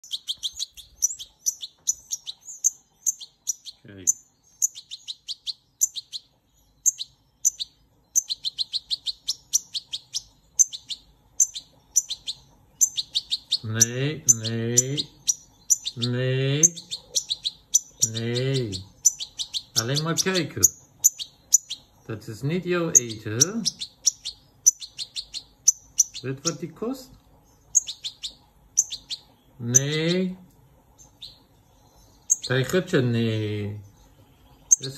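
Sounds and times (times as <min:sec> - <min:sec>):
chick peeping rapidly: 0:00.0 - 0:34.9
small bird chirping: 0:00.0 - 0:34.9.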